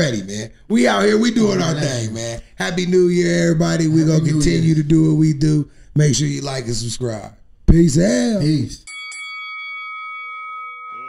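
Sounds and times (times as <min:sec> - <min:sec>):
bell-like chime ringing: 0:08.8 - 0:11.0.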